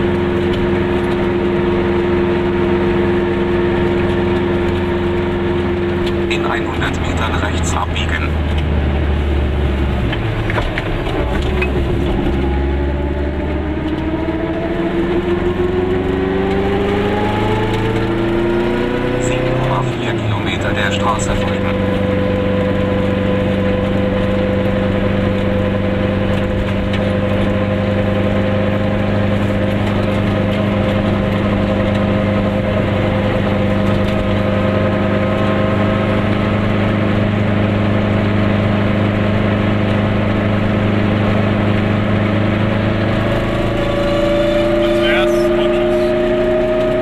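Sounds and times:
two-stroke car engine running: 0:00.0 - 0:47.0.

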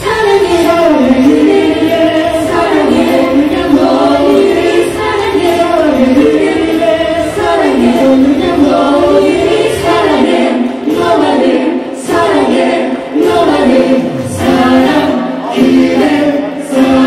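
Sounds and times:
women singing in harmony: 0:00.0 - 0:17.0.

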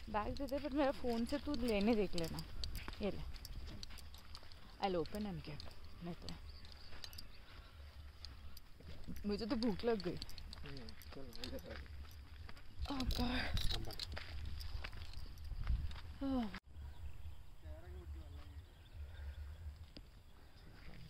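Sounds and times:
voices talking quietly: 0:00.0 - 0:15.4, 0:16.1 - 0:21.0
wind rumble on microphone: 0:12.7 - 0:16.5.

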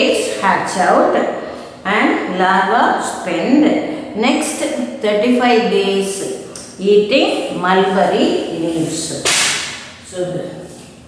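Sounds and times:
woman speaking: 0:00.0 - 0:09.3.

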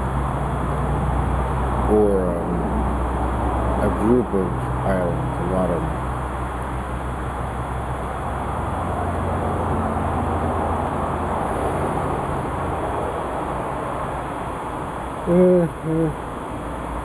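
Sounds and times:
deep hum: 0:00.0 - 0:13.1.

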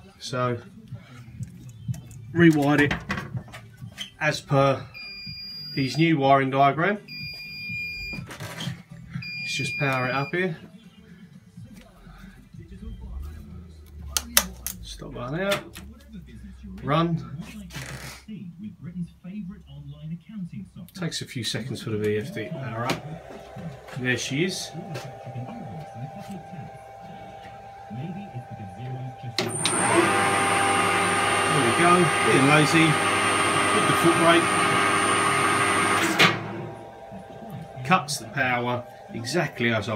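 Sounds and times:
high steady whine: 0:21.8 - 0:39.9
lathe motor whining: 0:21.8 - 0:39.9
low hum: 0:22.3 - 0:29.2.

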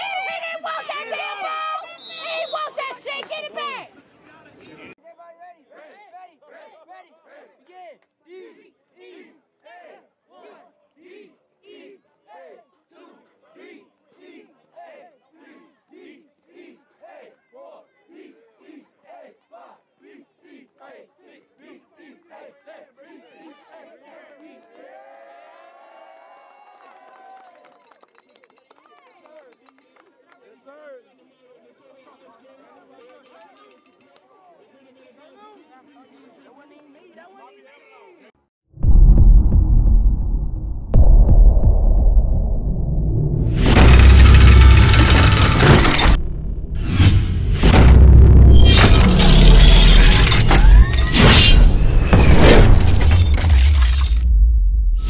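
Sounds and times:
group of voices chanting: 0:05.7 - 0:25.0
deep throbbing hum: 0:38.8 - 0:55.0
faint regular pulses: 0:38.8 - 0:55.0
sharp hit: 0:38.8 - 0:55.0.

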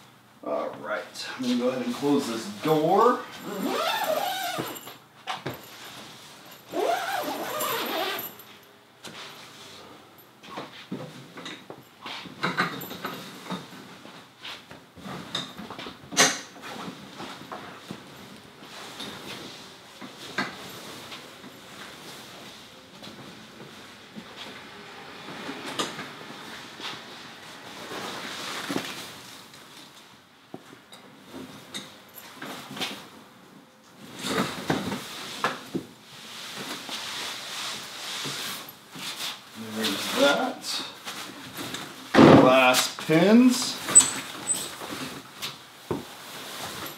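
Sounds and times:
fabric rustling and folding: 0:05.5 - 0:08.6.

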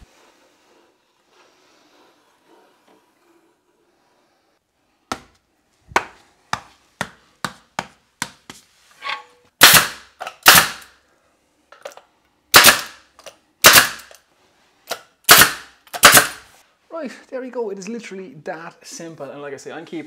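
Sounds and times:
brad nailer shots: 0:09.6 - 0:10.9, 0:12.5 - 0:13.0, 0:13.6 - 0:14.2, 0:14.9 - 0:16.6.

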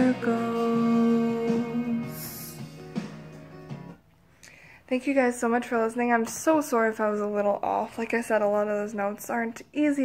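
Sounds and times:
woman speaking: 0:00.0 - 0:02.3, 0:04.9 - 0:10.0.

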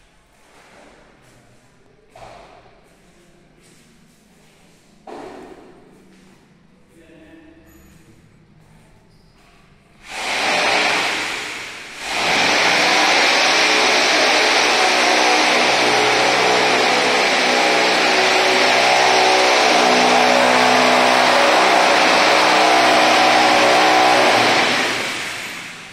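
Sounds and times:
electric power tool running: 0:10.0 - 0:25.9.

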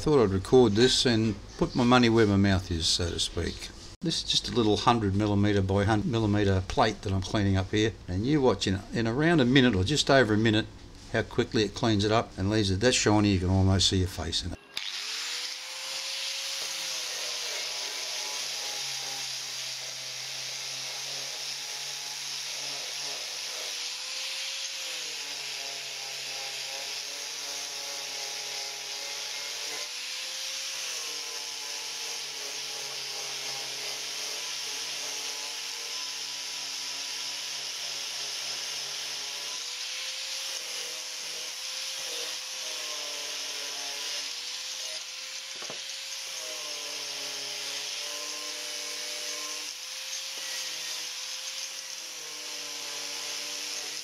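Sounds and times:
angle grinder motor whine: 0:14.6 - 0:54.0.

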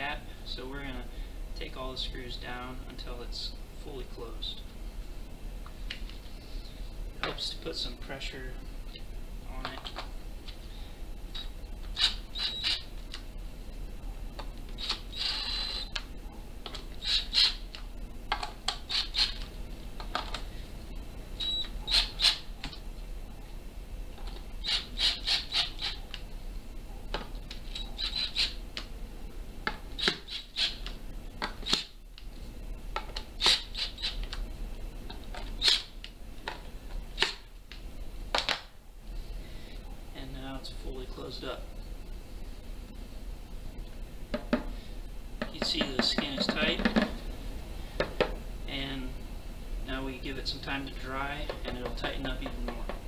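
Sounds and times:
cordless drill driving screws: 0:11.9 - 0:12.9, 0:14.8 - 0:15.9, 0:17.0 - 0:17.6, 0:18.8 - 0:19.4, 0:21.4 - 0:22.4, 0:24.6 - 0:26.0, 0:27.7 - 0:28.6.

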